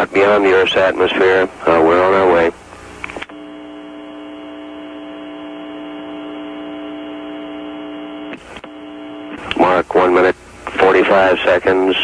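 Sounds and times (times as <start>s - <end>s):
steady electronic buzz: 0.0s - 11.2s.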